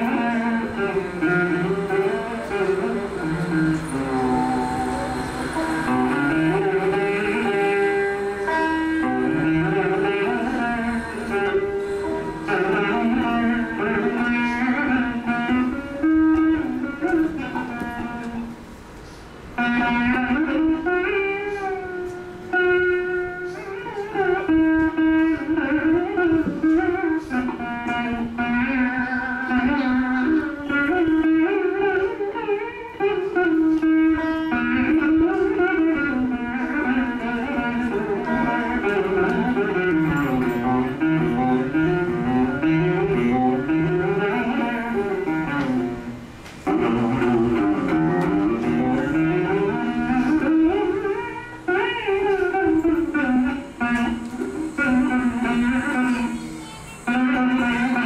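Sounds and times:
plucked veena melody: 0.0 - 58.0.

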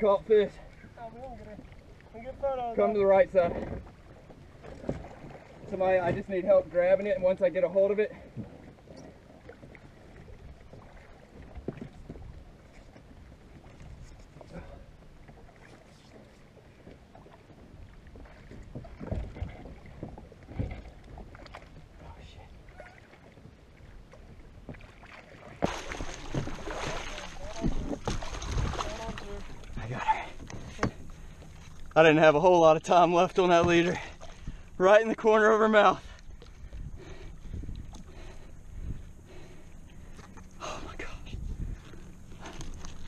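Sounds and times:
water lapping: 0.0 - 43.0
wind: 0.0 - 43.0
rushing wash of water: 24.9 - 30.4.

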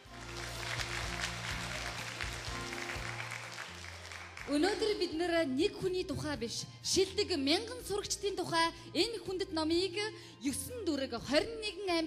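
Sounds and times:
audience applauding: 0.0 - 5.0
background music with low bass: 0.0 - 12.0.

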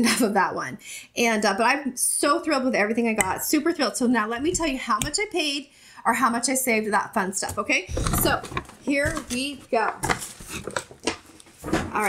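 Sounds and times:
paper bag rustling: 7.9 - 12.0.

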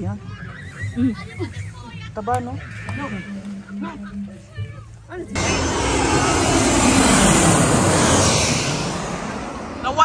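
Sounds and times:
airplane engine passing overhead: 5.4 - 10.0.

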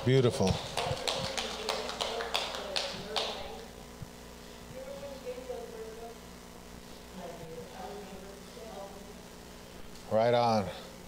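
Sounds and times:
slow hand claps: 0.5 - 3.6.

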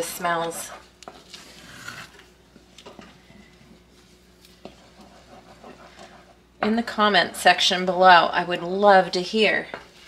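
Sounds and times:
soft squelching of thick mixture: 0.5 - 6.5.

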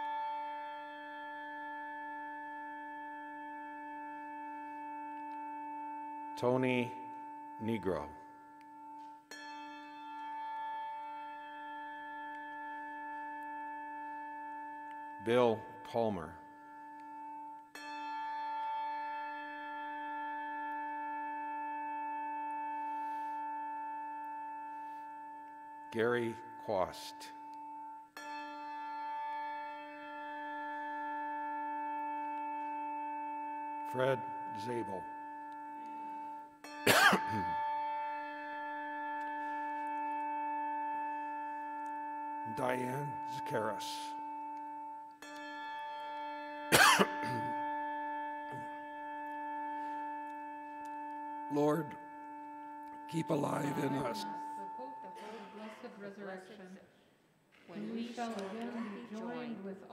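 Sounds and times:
loud cough: 36.9 - 37.5, 46.7 - 47.6, 55.2 - 55.6.

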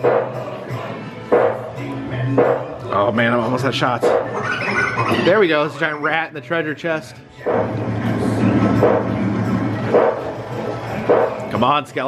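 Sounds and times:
background music: 0.0 - 12.0
game sound effects: 4.0 - 6.3.

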